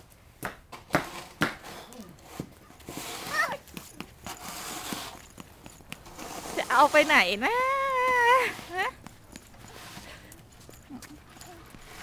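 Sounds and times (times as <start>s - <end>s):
child's footsteps on wet concrete: 0.0s - 12.0s.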